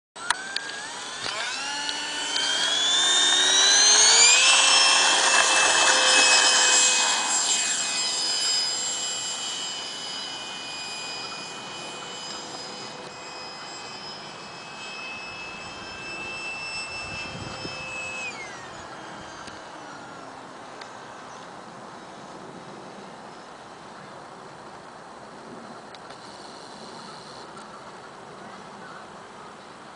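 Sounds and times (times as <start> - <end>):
electric jet motor whine: 0.2 - 23.7, 25.2 - 29.0.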